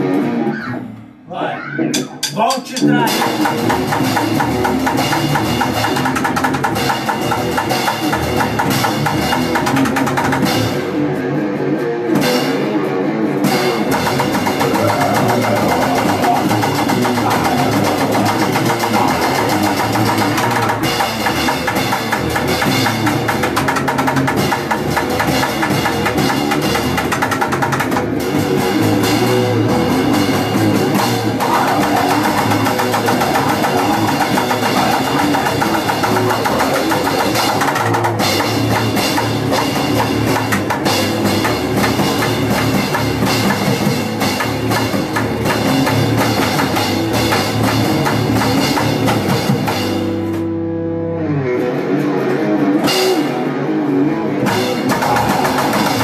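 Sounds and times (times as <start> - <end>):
electric guitar: 0.0 - 2.2, 2.9 - 56.0
drum kit: 1.9 - 50.6, 51.6 - 56.0.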